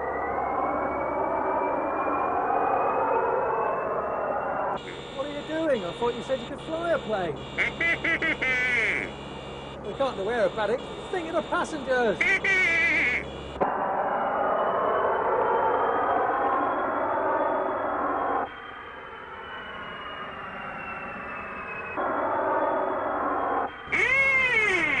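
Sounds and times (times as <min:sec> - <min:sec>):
high squeaky swooping cries: 0:23.9 - 0:25.0.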